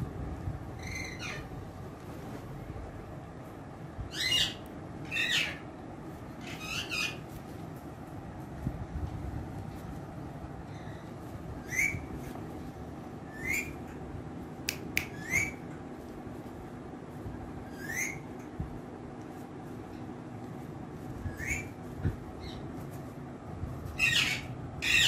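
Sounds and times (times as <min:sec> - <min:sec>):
parakeet squawking: 0:00.8 - 0:01.5, 0:04.1 - 0:05.6, 0:06.4 - 0:07.2, 0:17.7 - 0:18.2, 0:21.3 - 0:21.8, 0:24.0 - 0:25.0.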